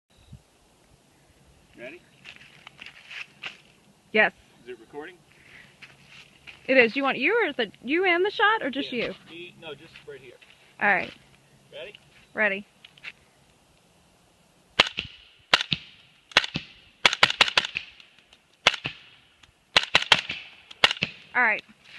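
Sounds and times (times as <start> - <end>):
faint clicks and scuffs: 2.2 - 3.7
suppressed rifle shots: 14.8 - 18.0, 18.6 - 21.3.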